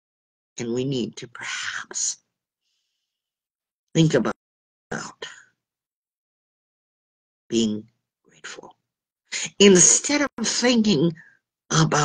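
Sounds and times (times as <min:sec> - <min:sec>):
person speaking: 0:09.4 - 0:12.0.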